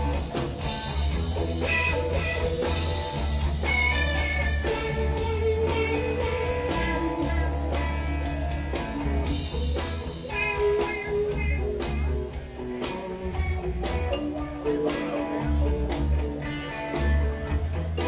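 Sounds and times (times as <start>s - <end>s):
heavy bass line: 0.0s - 14.2s
drums: 0.0s - 18.0s
electric guitars: 0.0s - 18.0s.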